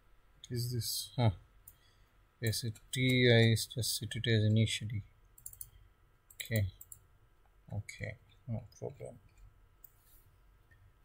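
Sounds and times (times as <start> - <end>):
computer mouse click: 5.4 - 7.0.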